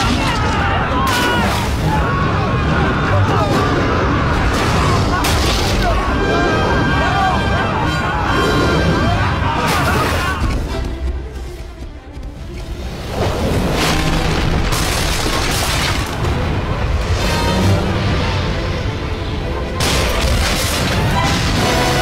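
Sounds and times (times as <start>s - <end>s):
dramatic orchestral music: 0.0s - 22.0s.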